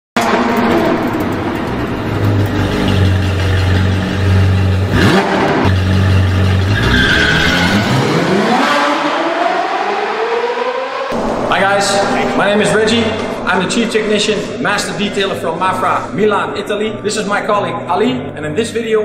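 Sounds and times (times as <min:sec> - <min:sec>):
car engine revving: 0:00.2 - 0:16.2.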